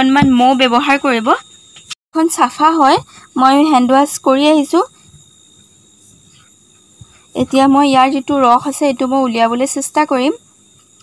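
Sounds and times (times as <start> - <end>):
woman speaking: 0.0 - 1.4, 2.2 - 4.9, 7.4 - 10.4
crickets trilling: 0.0 - 11.0.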